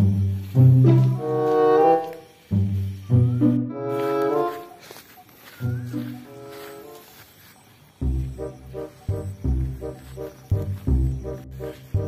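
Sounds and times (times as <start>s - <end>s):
low held music notes: 0.0s - 7.2s, 7.9s - 12.0s.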